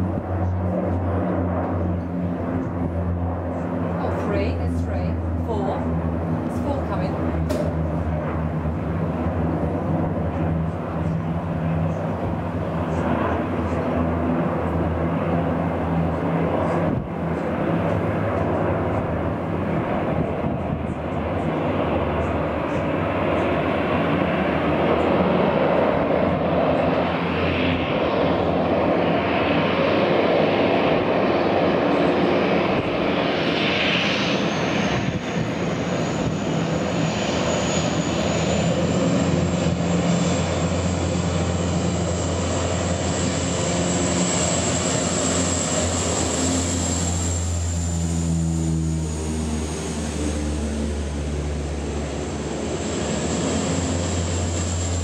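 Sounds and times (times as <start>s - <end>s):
turboprop engines droning: 0.0s - 55.0s
high turbine whine: 24.1s - 55.0s.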